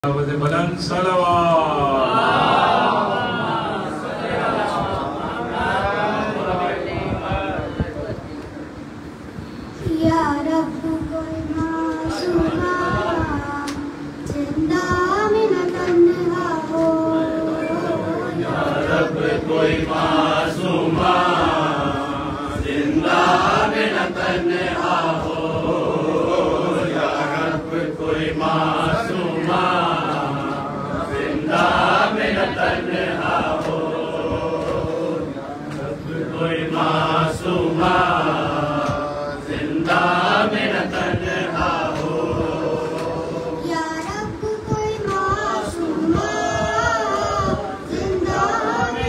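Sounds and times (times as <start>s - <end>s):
boy chanting into microphone: 9.6s - 49.0s
men singing in chorus: 17.4s - 43.9s.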